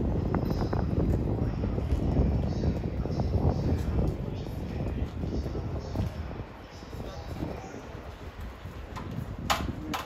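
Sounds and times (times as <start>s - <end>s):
wheels knocking over track: 8.9s - 10.0s.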